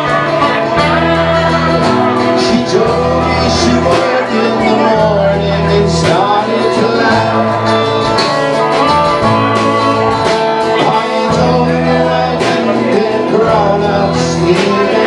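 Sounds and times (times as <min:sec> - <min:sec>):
electric bass notes: 0:00.0 - 0:15.0
man singing: 0:00.0 - 0:15.0
strummed guitar: 0:00.0 - 0:15.0.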